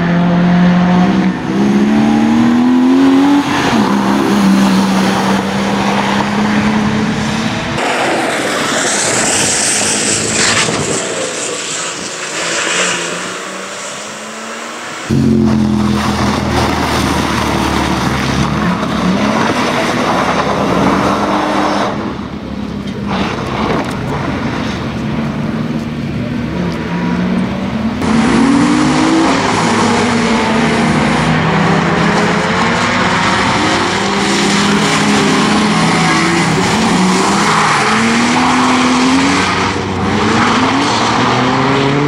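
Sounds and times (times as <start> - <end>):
car engine revving: 0.0 - 42.0.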